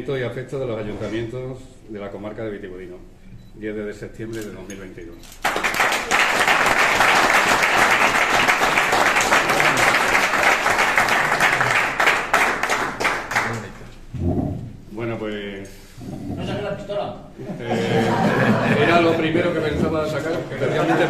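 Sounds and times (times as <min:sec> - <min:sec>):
small group applauding: 0:05.3 - 0:14.0.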